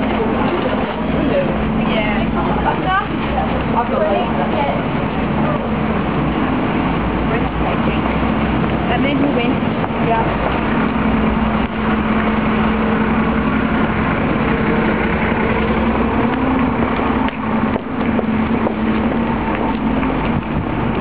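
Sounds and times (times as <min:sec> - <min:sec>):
street noise: 0:00.0 - 0:21.0
vehicle engine drone: 0:00.0 - 0:21.0.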